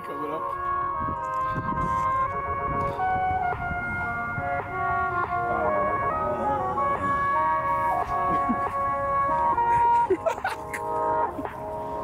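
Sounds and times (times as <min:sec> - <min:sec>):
instrumental music with held tones: 0:00.0 - 0:12.0.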